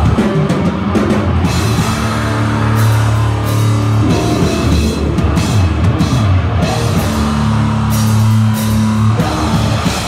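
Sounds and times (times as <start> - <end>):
distorted guitar low note: 1.5 - 10.0.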